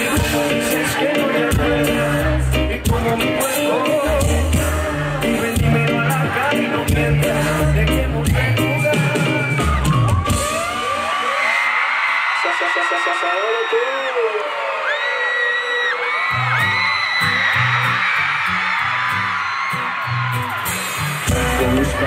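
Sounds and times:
crowd screaming and whooping: 0.0 - 22.0
live concert music: 0.0 - 22.0.

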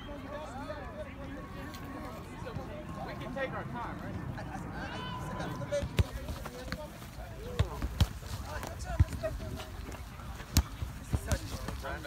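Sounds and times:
soccer ball kicked on grass: 5.7 - 12.0.

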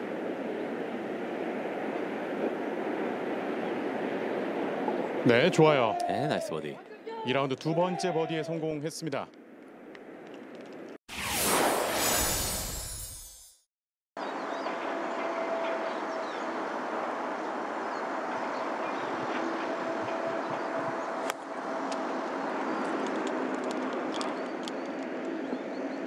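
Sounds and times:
loud whoosh: 11.1 - 13.6
open-air ambience: 14.2 - 26.0.

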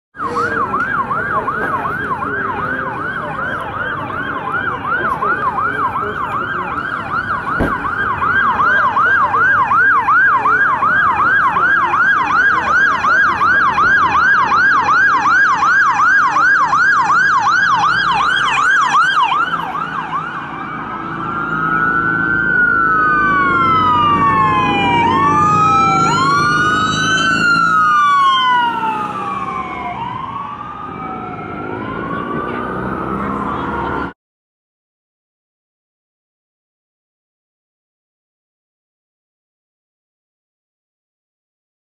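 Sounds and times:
emergency vehicle sirens: 0.2 - 34.2
low traffic rumble: 0.2 - 34.2.

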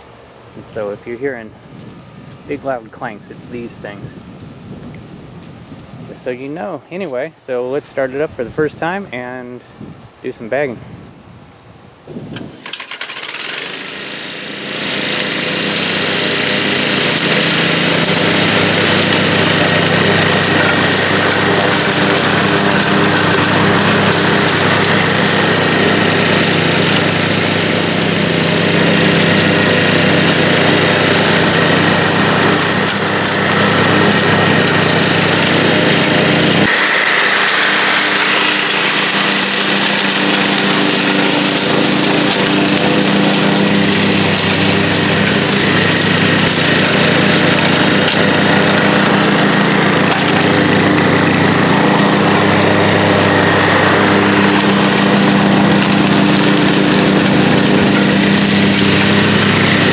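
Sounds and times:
lawn mower engine running: 0.0 - 9.8, 12.0 - 59.9.

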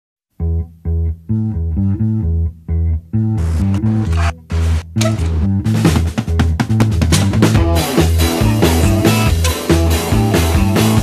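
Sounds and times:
low chopped riff: 0.3 - 11.0
drums with cymbals: 4.6 - 11.0.

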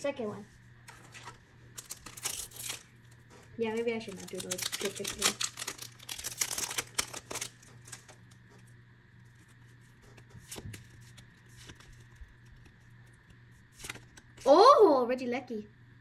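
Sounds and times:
foil wrapper crinkling and tearing: 0.9 - 8.6, 9.2 - 14.4
cards clicking: 4.1 - 8.2, 10.1 - 14.4.

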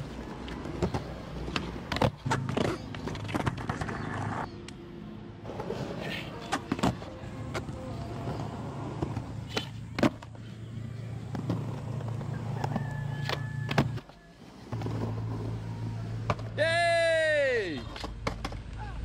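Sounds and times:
skateboard wheels rolling on concrete: 0.0 - 4.8, 5.4 - 16.6, 17.8 - 19.0
loud cry: 16.6 - 17.8.

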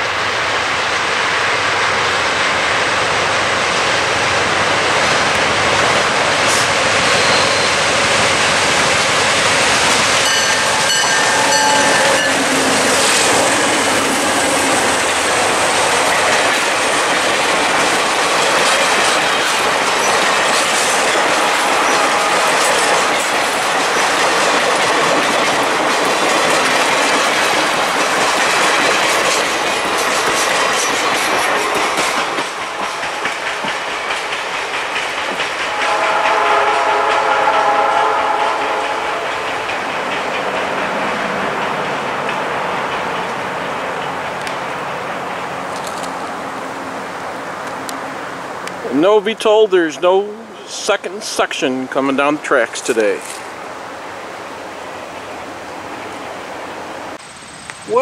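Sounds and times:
diesel train passing: 0.0 - 58.0
wheels clicking over rail joints: 5.2 - 36.0
train horn: 10.2 - 13.1, 21.4 - 23.0, 35.6 - 39.6.

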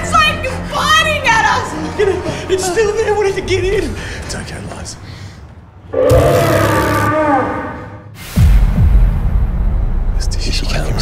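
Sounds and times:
raptor roar: 5.9 - 8.1.

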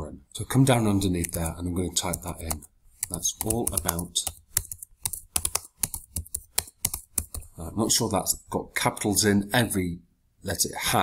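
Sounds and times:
typing on a computer keyboard: 1.2 - 7.5.

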